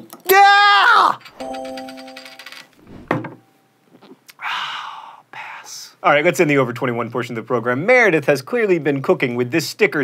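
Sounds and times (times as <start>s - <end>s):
short chime-like tone: 1.4s - 3.8s.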